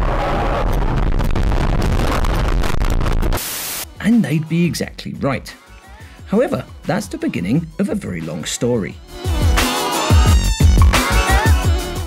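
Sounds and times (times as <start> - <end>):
white-noise static: 0.0 - 4.0.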